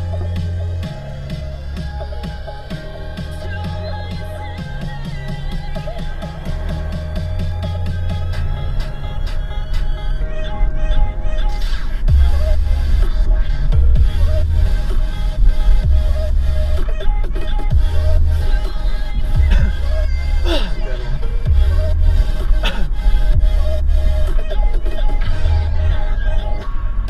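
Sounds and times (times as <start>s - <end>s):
electronic music with heavy bass: 0.0s - 27.0s.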